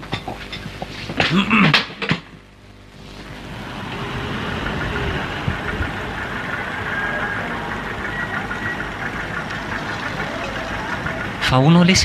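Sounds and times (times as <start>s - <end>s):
engine running: 0.0s - 12.0s.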